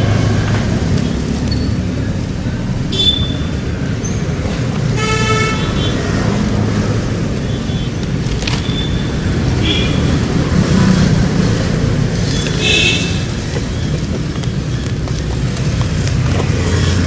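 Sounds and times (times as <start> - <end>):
road traffic rumble: 0.0 - 17.0
vehicle horn: 4.9 - 6.0.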